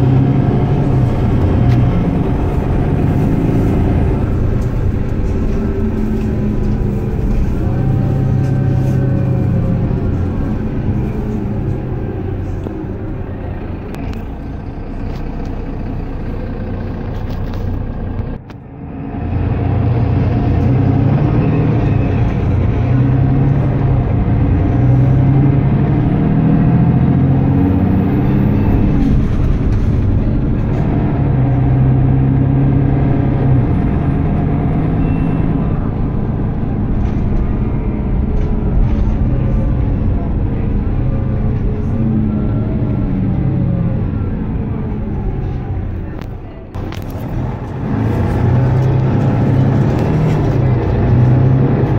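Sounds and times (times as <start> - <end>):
bus engine drone: 0.0 - 51.9
road and body noise: 0.0 - 51.9.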